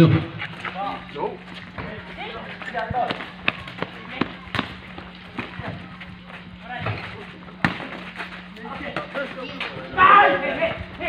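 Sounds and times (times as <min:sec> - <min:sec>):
scattered voices: 0:00.0 - 0:11.0
steady low hum: 0:00.0 - 0:11.0
players running: 0:00.2 - 0:11.0
basketball bouncing on concrete: 0:01.6 - 0:09.3.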